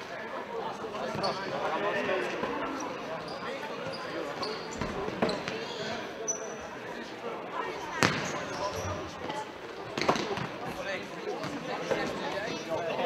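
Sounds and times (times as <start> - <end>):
spectators chattering: 0.0 - 13.0
shoes squeaking on floor: 1.0 - 1.7, 2.6 - 6.8, 8.0 - 10.5.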